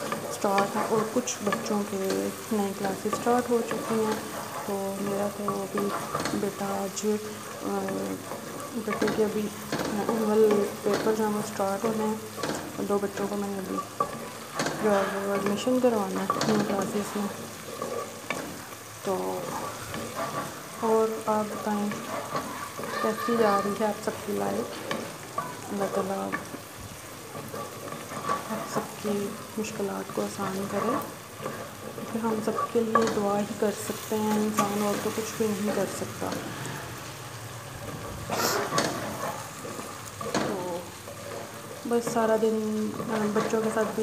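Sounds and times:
spoon stirring in a pot: 0.0 - 36.4, 37.9 - 44.0
vegetables sizzling in oil: 0.0 - 44.0.

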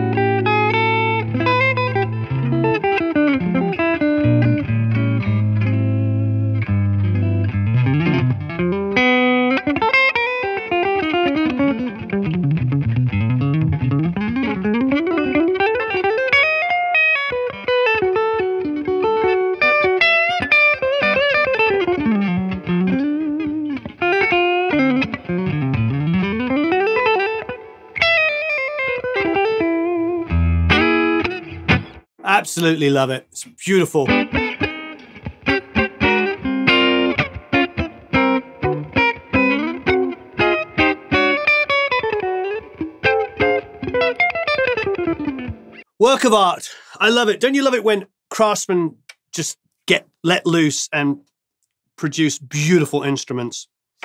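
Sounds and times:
electric guitar solo: 0.0 - 31.9, 33.9 - 45.8.

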